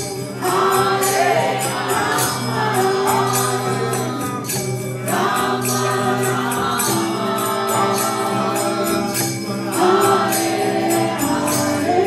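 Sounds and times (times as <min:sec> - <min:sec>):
hand cymbals struck: 0:00.0 - 0:12.0
many voices chanting: 0:00.0 - 0:12.0.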